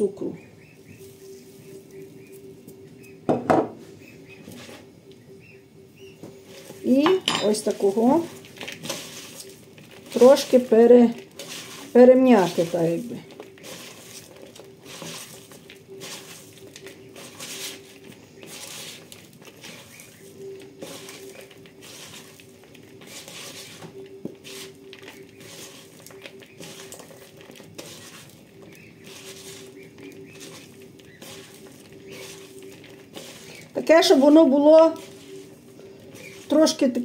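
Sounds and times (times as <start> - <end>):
cabbage crunching rustle by hand: 0.6 - 2.8, 6.4 - 37.0.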